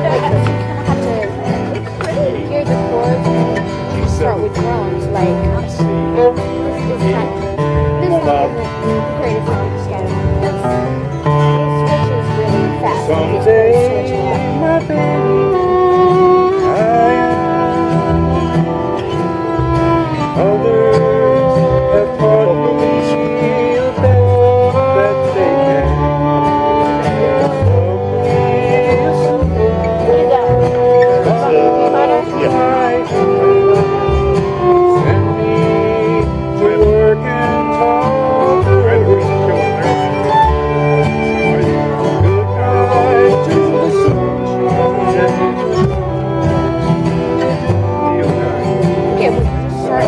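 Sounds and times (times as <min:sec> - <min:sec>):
acoustic guitar: 0:00.0 - 0:50.0
fiddle playing fast tune: 0:00.0 - 0:50.0
upright bass: 0:00.0 - 0:50.0.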